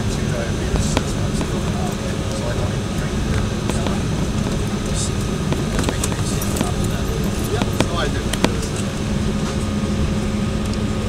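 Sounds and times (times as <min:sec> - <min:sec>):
cabin air noise: 0:00.0 - 0:11.0
jet engines rumbling: 0:00.0 - 0:11.0.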